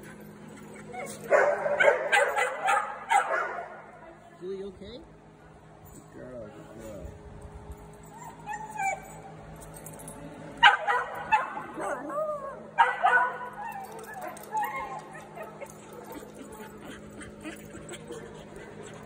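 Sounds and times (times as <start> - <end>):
small dogs barking: 0.9 - 3.9, 10.6 - 19.0
dog whining: 8.0 - 9.4, 11.8 - 12.8, 13.4 - 19.0.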